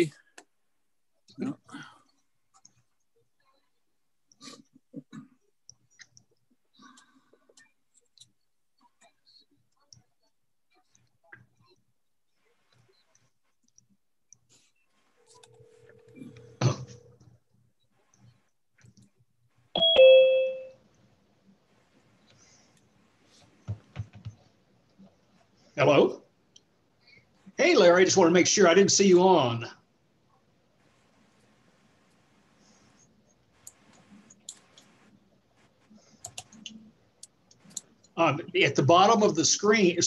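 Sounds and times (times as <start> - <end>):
two-note chime: 19.8 - 20.7.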